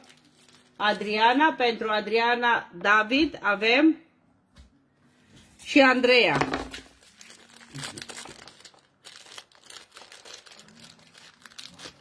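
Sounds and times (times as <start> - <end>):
plastic packaging crinkling: 0.0 - 1.5, 6.6 - 12.0.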